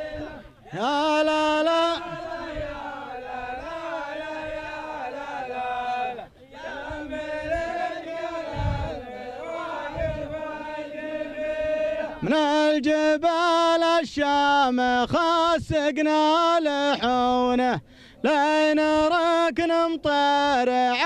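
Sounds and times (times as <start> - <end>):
men chanting: 0.0 - 21.0.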